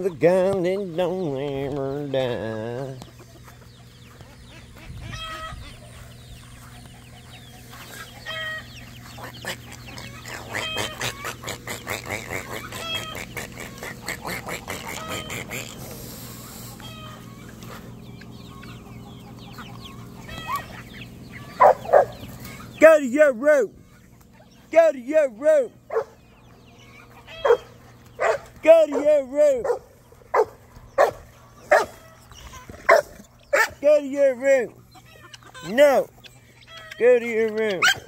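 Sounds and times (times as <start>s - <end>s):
chickens clucking and calling: 0.0s - 38.0s
steady low hum: 0.0s - 38.0s.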